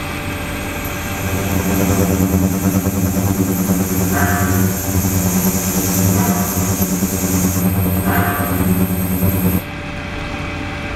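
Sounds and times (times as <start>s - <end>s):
electrical buzzing hum: 0.0s - 9.7s
high whine: 0.0s - 9.7s
water hissing: 0.5s - 9.6s.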